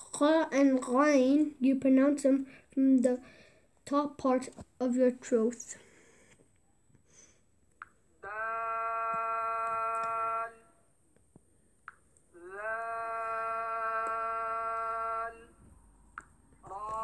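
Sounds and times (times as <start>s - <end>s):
person pronouncing drawn-out vowels: 8.2s - 10.8s, 12.3s - 15.6s, 16.6s - 17.0s.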